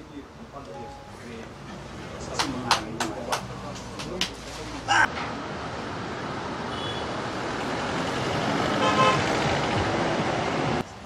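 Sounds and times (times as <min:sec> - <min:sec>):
road traffic passing: 0:00.0 - 0:11.0
vehicle horn: 0:08.8 - 0:09.2.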